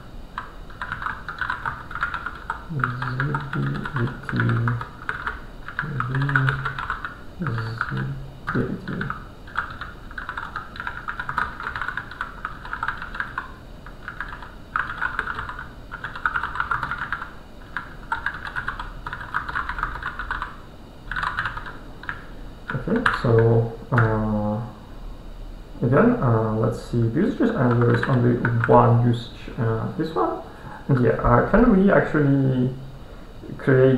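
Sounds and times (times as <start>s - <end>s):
typing on computer keyboard: 0.4s - 23.2s, 27.6s - 28.7s.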